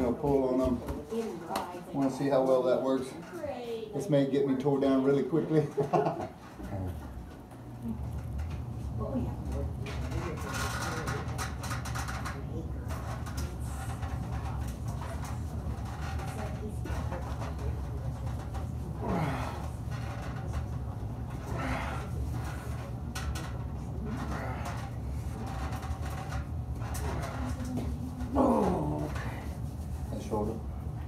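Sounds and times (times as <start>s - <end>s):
steady low hum: 0.0s - 31.0s
men grunting: 28.3s - 29.3s.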